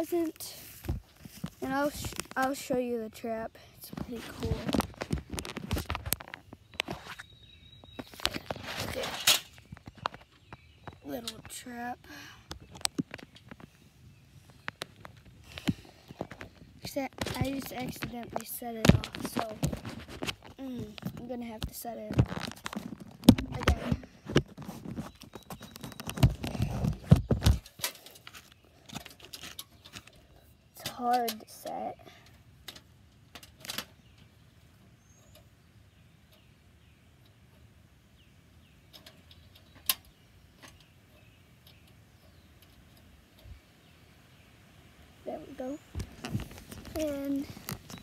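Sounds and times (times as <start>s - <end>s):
rubbing against microphone: 3.8s - 7.3s, 8.0s - 10.3s, 15.2s - 29.8s, 45.6s - 48.0s
sharp crackle: 3.8s - 31.4s, 45.0s - 48.0s
small snaps and knocks: 4.4s - 7.2s, 12.5s - 13.7s, 14.5s - 30.2s, 32.6s - 34.3s, 38.9s - 40.9s, 45.9s - 48.0s.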